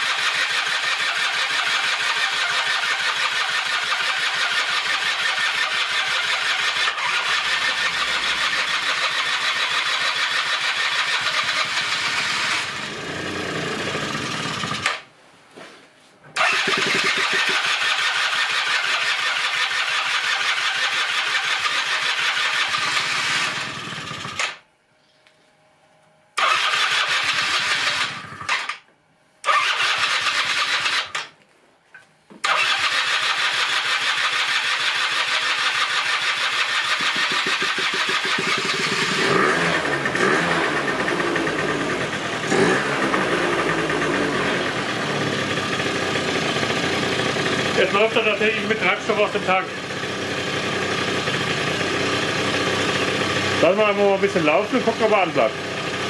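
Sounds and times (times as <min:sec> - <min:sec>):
scooter two-stroke engine: 0:00.0 - 0:15.1, 0:16.4 - 0:24.6, 0:26.4 - 0:28.8, 0:29.4 - 0:31.3, 0:32.4 - 0:56.0.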